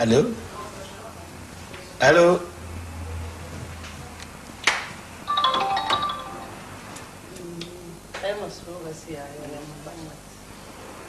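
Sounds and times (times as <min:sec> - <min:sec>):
mobile phone beeping melody: 0:05.3 - 0:06.7.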